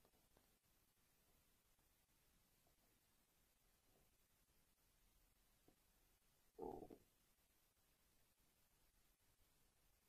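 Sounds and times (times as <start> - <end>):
faint muffled noise: 0.0 - 10.0.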